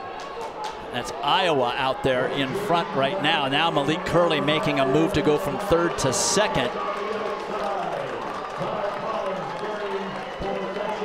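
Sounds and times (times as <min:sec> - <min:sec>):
stadium crowd noise: 0:00.0 - 0:11.0
man talking: 0:00.9 - 0:06.7.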